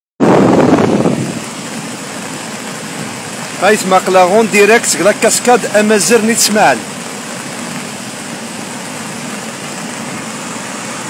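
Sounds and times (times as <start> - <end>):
wind on microphone: 0.2 - 2.3
waterfall rushing: 0.2 - 11.0.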